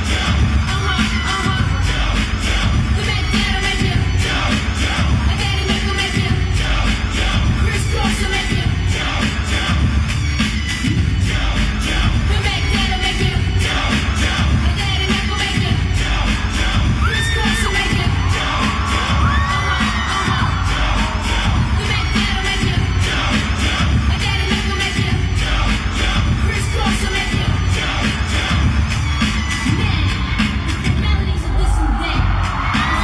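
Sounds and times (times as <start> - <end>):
crowd screaming and cheering: 0.0 - 33.0
pop dance music with bass beat: 0.0 - 33.0.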